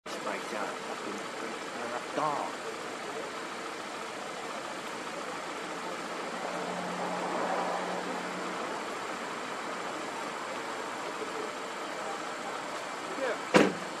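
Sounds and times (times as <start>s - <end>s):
distant engine: 0.1s - 14.0s
sharp knock: 13.5s - 13.9s.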